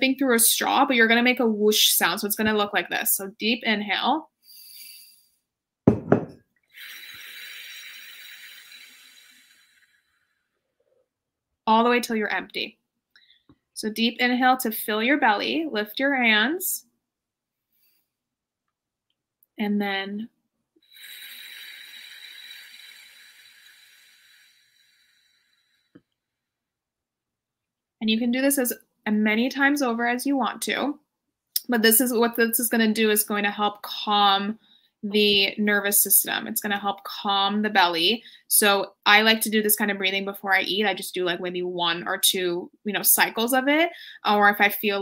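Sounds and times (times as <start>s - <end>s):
glass jar set down on table: 5.9s - 6.4s
whooshing exhale through pursed lips: 6.7s - 10.7s, 20.9s - 26.0s.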